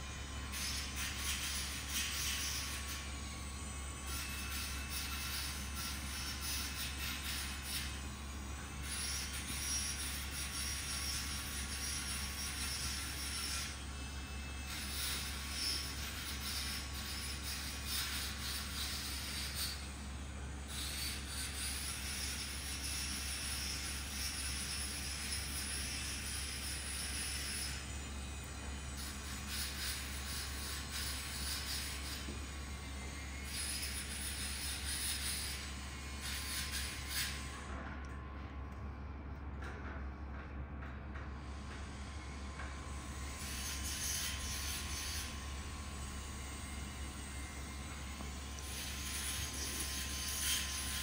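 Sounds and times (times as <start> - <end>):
low machine hum: 25.0 - 51.0.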